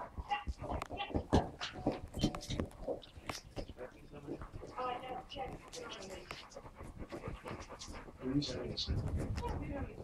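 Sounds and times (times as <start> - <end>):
dog panting: 1.6 - 10.0.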